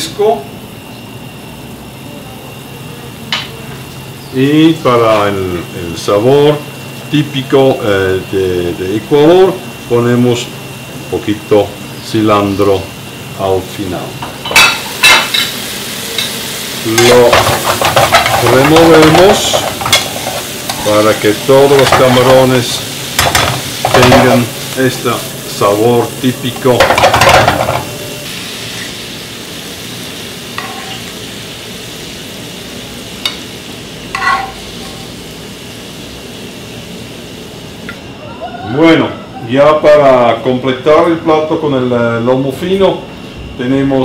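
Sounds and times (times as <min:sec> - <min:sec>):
food sizzling in a frying pan: 0:00.0 - 0:43.0
metal spoon clinking dishes: 0:30.6 - 0:31.0, 0:34.2 - 0:35.0.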